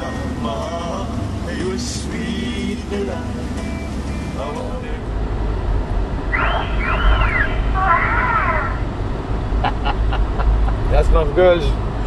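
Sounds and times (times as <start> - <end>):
car engine and road rumble: 0.0 - 12.0
high wavering calls: 6.3 - 8.9.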